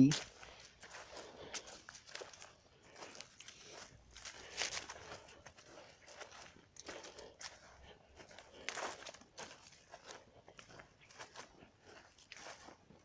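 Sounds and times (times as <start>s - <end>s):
footsteps crunching on dry grass: 0.0s - 13.0s.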